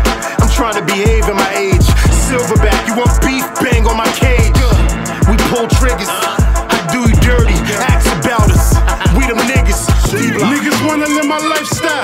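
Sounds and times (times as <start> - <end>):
rapping over a beat: 0.0 - 12.0.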